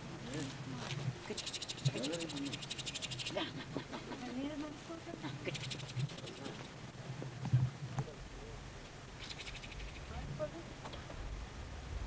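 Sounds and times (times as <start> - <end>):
faint voices talking: 0.0 - 9.1
fast fine ticking: 1.4 - 3.4.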